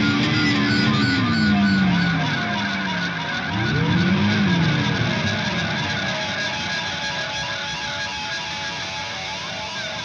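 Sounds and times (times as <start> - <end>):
distorted electric guitar bends: 0.0 - 10.0.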